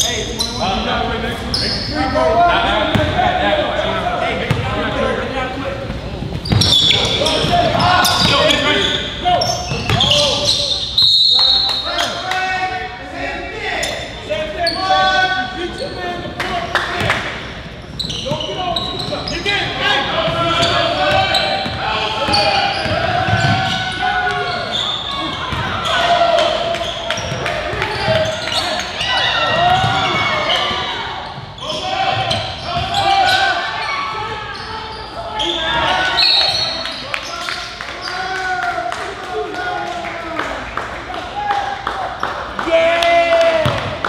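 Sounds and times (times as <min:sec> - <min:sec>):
players calling out: 0:00.0 - 0:44.0.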